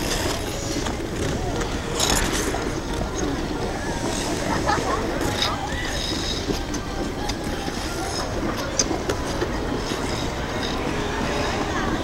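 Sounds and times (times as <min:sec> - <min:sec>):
ice skates scraping: 0:00.0 - 0:12.0.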